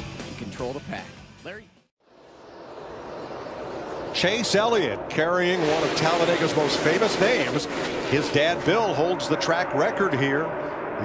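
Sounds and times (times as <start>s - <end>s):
racing car engines rushing: 2.2s - 11.0s.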